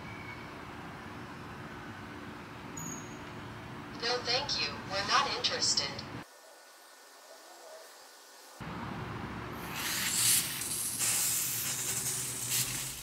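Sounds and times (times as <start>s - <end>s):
lawn sprinklers hissing: 9.6s - 13.0s.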